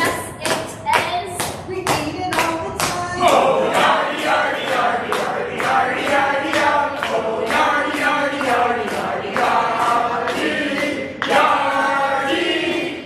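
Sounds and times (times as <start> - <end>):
hands clapping in rhythm: 0.0 - 13.0
group of voices singing: 2.8 - 13.0.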